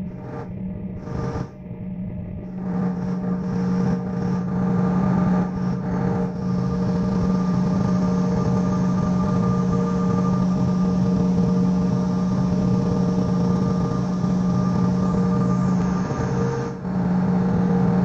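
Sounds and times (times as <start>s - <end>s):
jet engines humming and whining: 0.0s - 18.0s.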